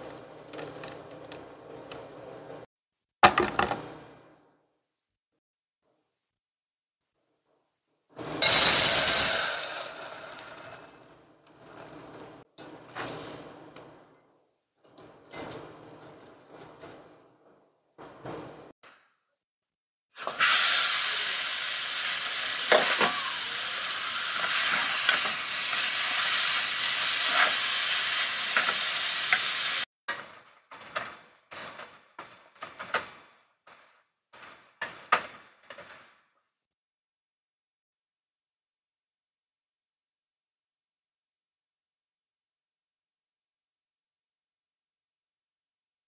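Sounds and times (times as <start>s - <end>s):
pan and stirring sounds: 0.0s - 4.0s, 9.7s - 18.7s, 22.6s - 36.3s
chicken sizzling in a pan: 20.2s - 29.9s.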